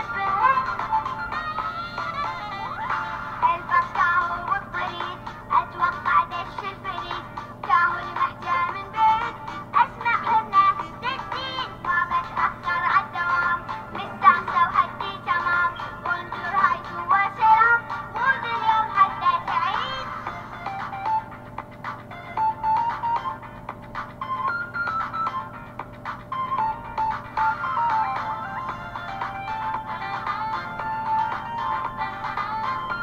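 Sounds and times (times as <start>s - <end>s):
synthetic singing over music: 0.0s - 21.3s, 26.5s - 33.0s
faint steady hum: 0.0s - 33.0s.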